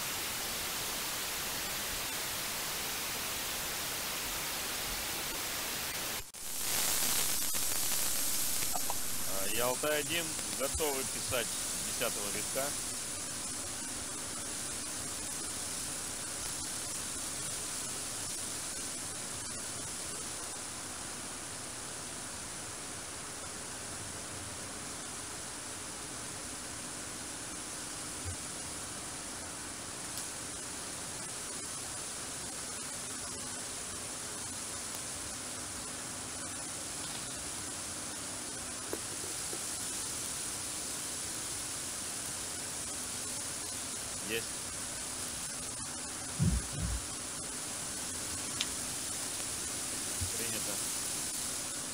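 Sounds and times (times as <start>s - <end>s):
radio static hiss: 0.0s - 51.9s
faint steady low tones: 46.4s - 47.2s.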